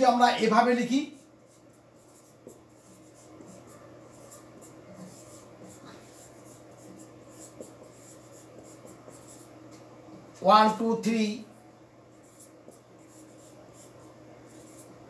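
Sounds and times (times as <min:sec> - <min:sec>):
marker scratching on whiteboard: 0:00.0 - 0:11.1, 0:12.0 - 0:15.0.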